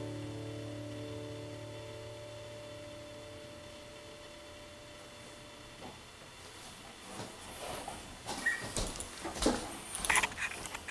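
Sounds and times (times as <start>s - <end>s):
chair squeak: 8.3s - 10.9s.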